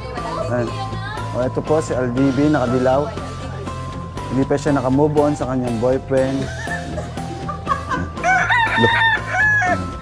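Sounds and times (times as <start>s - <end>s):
rooster crowing: 8.2s - 10.0s.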